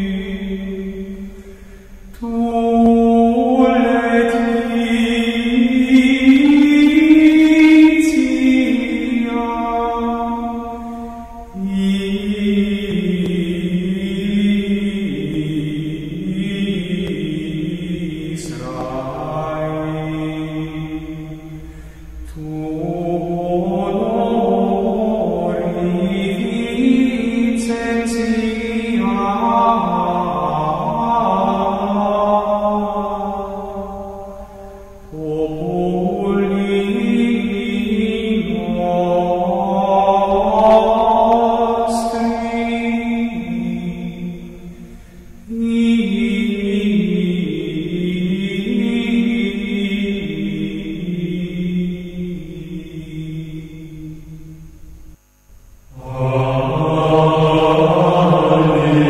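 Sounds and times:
slow devotional chant: 0:00.0 - 0:59.0.

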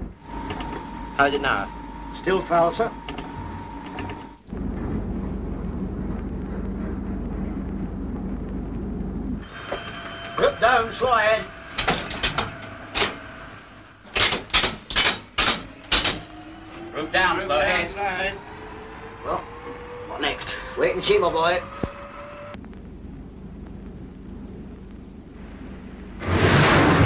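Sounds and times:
low machinery rumble: 0:00.0 - 0:14.2, 0:14.8 - 0:27.0
electric motor whine rising: 0:00.2 - 0:04.6, 0:15.7 - 0:22.6
lever clicks and clunks: 0:14.1 - 0:16.2.

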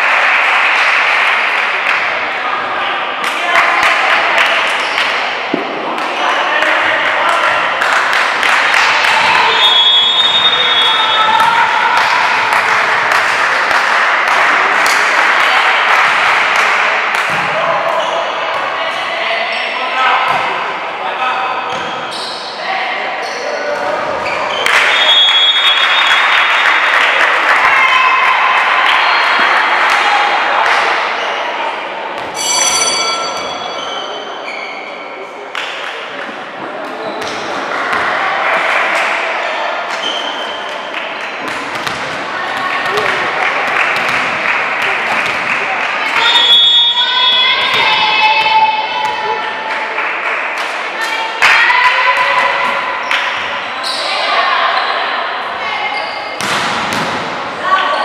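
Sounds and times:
crowd shouting and cheering: 0:00.0 - 0:58.0
referee's whistle blasts: 0:09.4 - 0:11.3, 0:24.8 - 0:26.2, 0:46.2 - 0:47.8
volleyball thumps: 0:41.4 - 0:45.5, 0:56.4 - 0:57.4.

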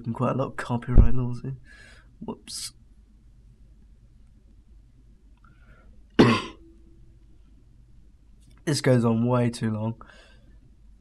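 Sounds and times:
short sharp cough: 0:06.2 - 0:06.6.

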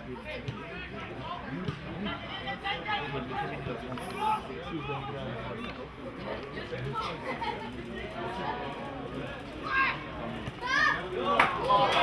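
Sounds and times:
young footballers shouting: 0:09.6 - 0:12.0.

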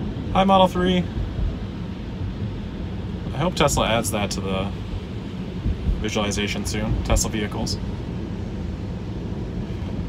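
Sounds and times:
low road rumble in car cabin: 0:00.0 - 0:10.0.

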